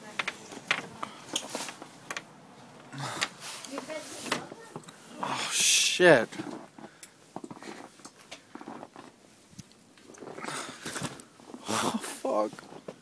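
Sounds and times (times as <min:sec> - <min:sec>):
person exclaiming: 0:05.2 - 0:06.2.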